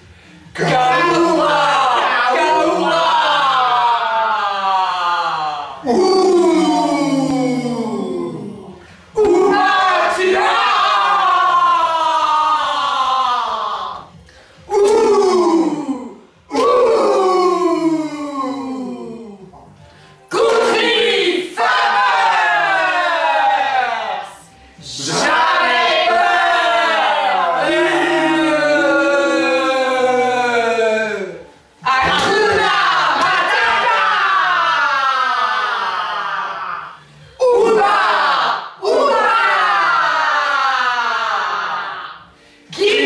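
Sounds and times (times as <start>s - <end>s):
voices shouting war cry: 0.6s - 8.6s, 9.2s - 14.0s, 14.7s - 19.2s, 20.3s - 42.1s, 42.7s - 43.0s.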